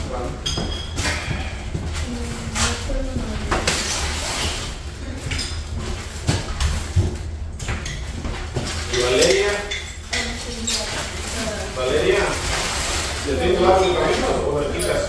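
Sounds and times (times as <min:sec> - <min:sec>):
dishes and cutlery clinking: 0:00.0 - 0:15.0
indistinct conversation: 0:00.0 - 0:15.0.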